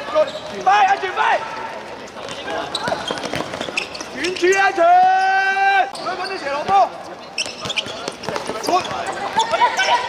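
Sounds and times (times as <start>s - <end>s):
ball kicked and bouncing on hard court: 2.2s - 4.0s.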